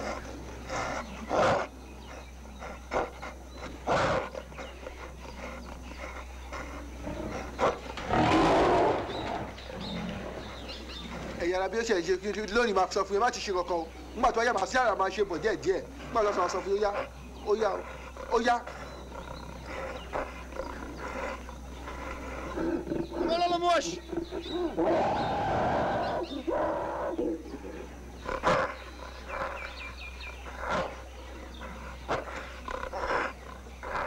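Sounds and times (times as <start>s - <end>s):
gorilla crying out: 23.1s - 27.6s.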